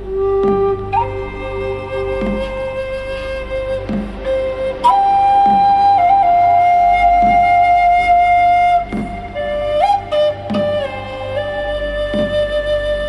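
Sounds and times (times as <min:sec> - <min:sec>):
flute melody: 0:00.0 - 0:13.0
low drone: 0:00.0 - 0:13.0
soft beat: 0:00.0 - 0:13.0.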